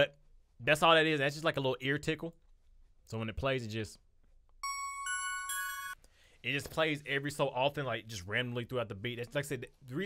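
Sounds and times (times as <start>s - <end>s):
synth bell notes: 4.6s - 6.0s.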